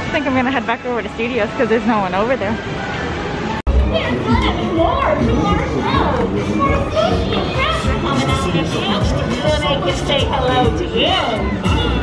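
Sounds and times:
crowd of voices talking: 0:00.0 - 0:12.0.

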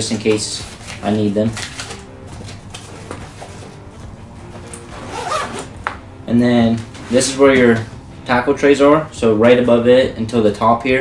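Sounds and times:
nylon fabric handling: 0:00.0 - 0:08.0
zipper being pulled shut: 0:04.6 - 0:05.9.

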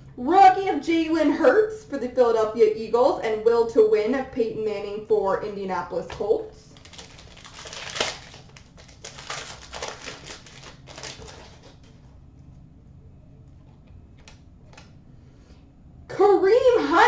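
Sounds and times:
cards and wrapper crinkling: 0:06.7 - 0:12.1.

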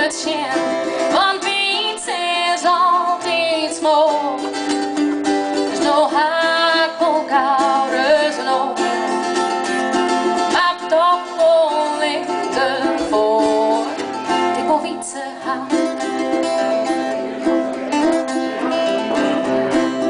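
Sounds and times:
woman singing a folk song: 0:00.0 - 0:09.4, 0:10.0 - 0:16.3
strummed acoustic guitar: 0:00.0 - 0:20.0
ukulele: 0:00.0 - 0:20.0.

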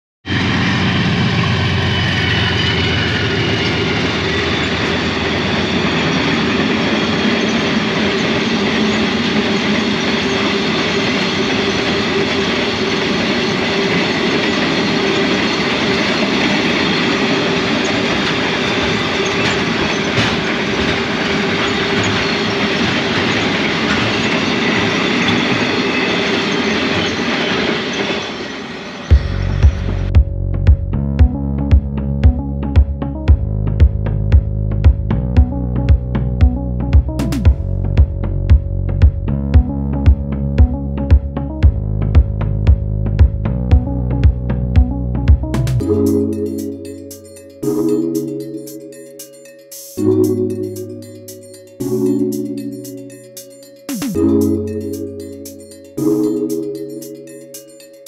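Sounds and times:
train wagons rumbling over rails: 0:00.3 - 0:31.0, 0:33.2 - 0:48.6
music: 0:29.1 - 0:58.0.

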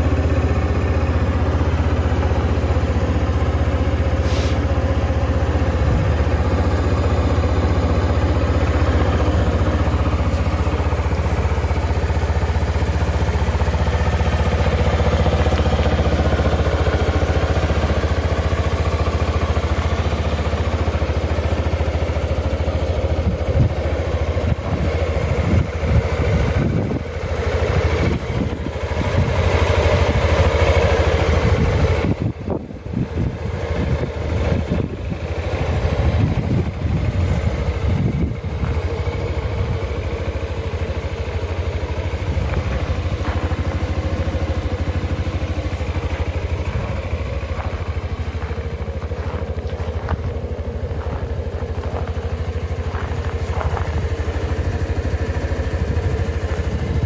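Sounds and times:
scooter engine idling: 0:00.0 - 0:57.0.

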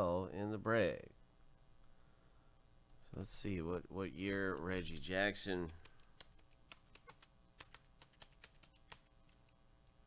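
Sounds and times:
typing on computer keyboard: 0:04.4 - 0:09.6.

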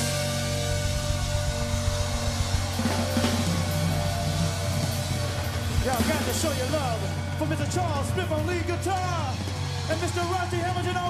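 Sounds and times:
bass drum and snare: 0:00.0 - 0:11.0
bass line: 0:00.0 - 0:11.0
funk band playing: 0:00.0 - 0:11.0.

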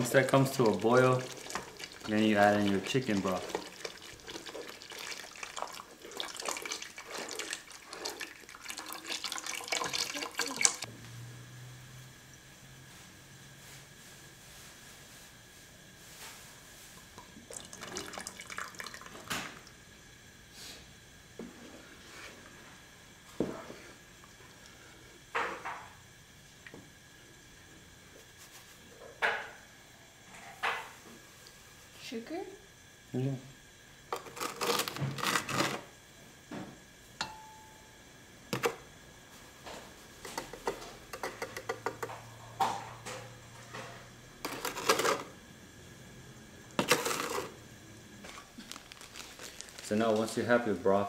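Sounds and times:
broth splashing into pot: 0:00.0 - 0:10.9, 0:17.0 - 0:19.8.

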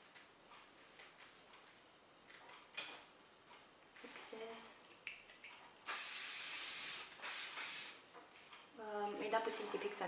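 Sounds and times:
aerosol can spraying hiss: 0:05.8 - 0:08.0.

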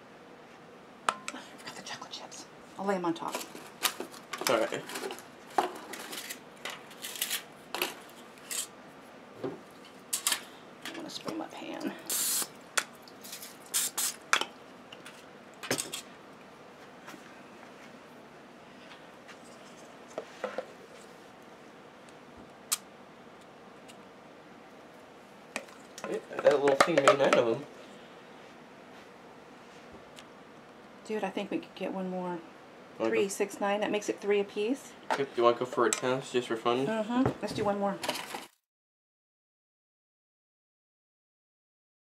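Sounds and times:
clicks and taps on metal tin: 0:26.5 - 0:27.4
person speaking: 0:36.0 - 0:38.0.

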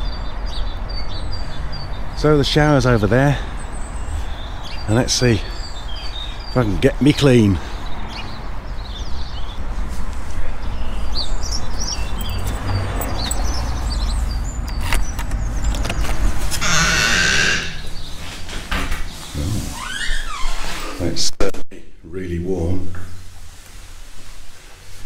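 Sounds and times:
door creaking: 0:14.6 - 0:21.1.

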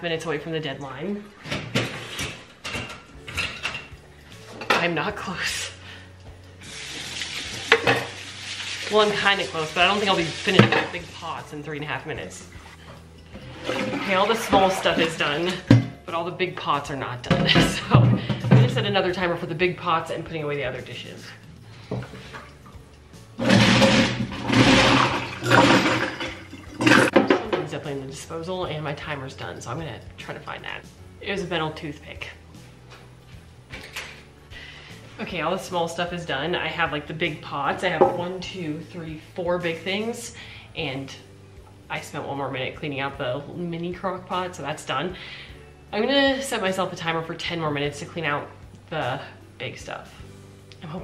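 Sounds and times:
dishes clinking and clattering: 0:01.4 - 0:04.8, 0:07.4 - 0:08.3, 0:10.4 - 0:11.0, 0:12.9 - 0:16.0, 0:17.3 - 0:18.9, 0:23.4 - 0:27.7
garbage disposal running with water: 0:06.6 - 0:11.5, 0:13.3 - 0:16.0, 0:23.4 - 0:27.8
metal rattling in disposal: 0:13.4 - 0:16.0, 0:23.4 - 0:27.8.

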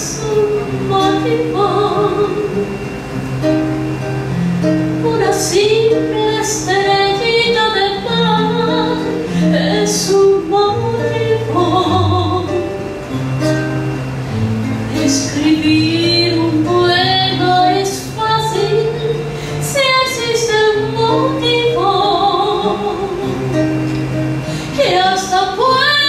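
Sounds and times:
woman singing into microphone: 0:00.0 - 0:03.0, 0:04.8 - 0:13.0, 0:14.9 - 0:26.0
acoustic guitar: 0:00.0 - 0:26.0.

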